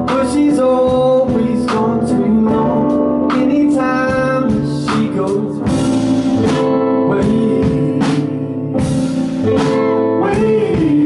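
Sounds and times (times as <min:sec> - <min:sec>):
drum hits: 0:00.0 - 0:11.0
live band playing blues-soul: 0:00.0 - 0:11.0.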